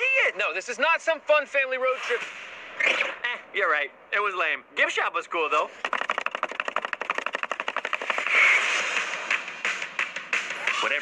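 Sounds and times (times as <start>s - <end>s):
fast sharp clicks: 5.8s - 10.1s.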